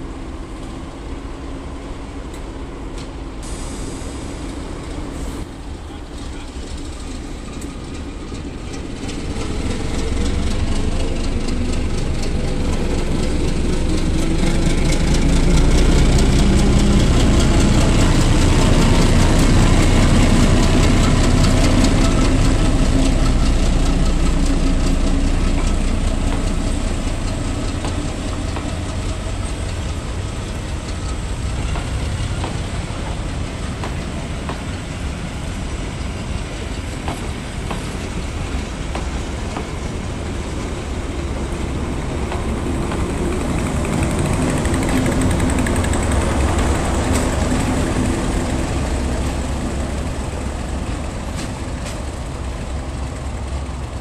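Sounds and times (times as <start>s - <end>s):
diesel locomotive engine running: 0.0s - 54.0s.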